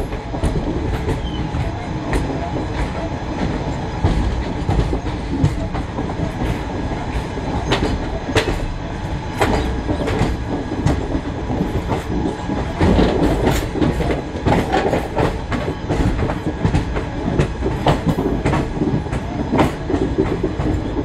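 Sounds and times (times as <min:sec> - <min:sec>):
train wheels rumbling on track: 0:00.0 - 0:21.0.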